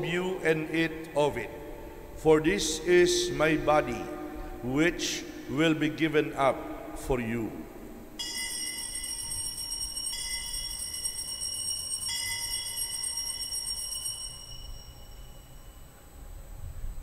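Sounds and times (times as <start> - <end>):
altar bells ringing: 8.2 - 16.0.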